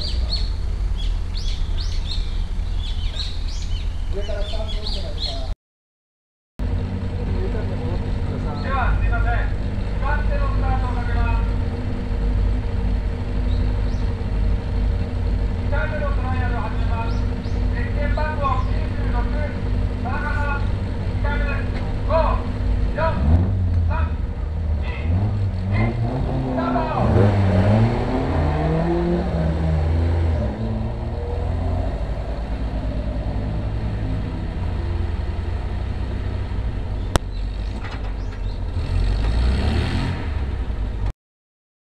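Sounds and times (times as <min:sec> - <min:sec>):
sports car engine revving: 0:06.6 - 0:41.1.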